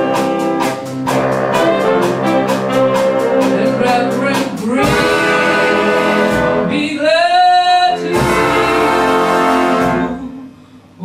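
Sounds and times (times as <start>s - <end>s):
jazz big band playing: 0.0s - 10.6s
strong held horn note: 4.8s - 6.8s, 8.1s - 10.4s.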